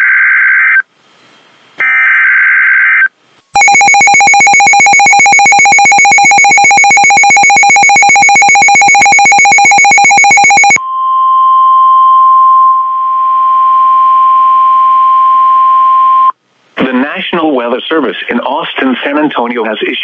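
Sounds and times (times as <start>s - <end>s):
warbling digital header data: 3.6s - 10.8s
steady alert tone: 3.6s - 11.0s
rapidly pulsed alarm beeping: 3.6s - 11.4s.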